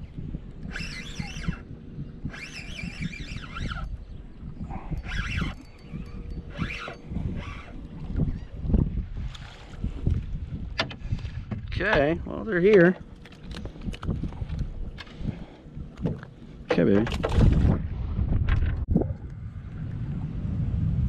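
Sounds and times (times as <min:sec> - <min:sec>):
wind rumble on microphone: 0:00.0 - 0:21.0.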